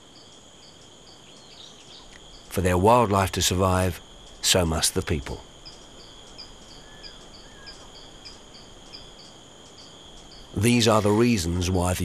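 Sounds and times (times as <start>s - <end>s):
insect chorus drone: 0.0s - 12.0s
short high insect chirps: 5.3s - 12.0s.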